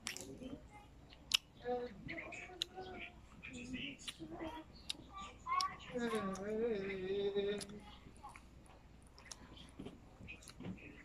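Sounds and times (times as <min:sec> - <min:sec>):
faint voices: 0:00.0 - 0:11.0
mouth eating sounds: 0:01.1 - 0:10.6.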